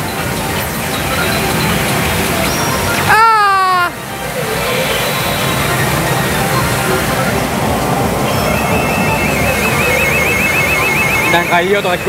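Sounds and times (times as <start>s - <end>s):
high electronic warbling tone: 0.0s - 12.0s
pachinko machine music and noise: 0.0s - 12.0s.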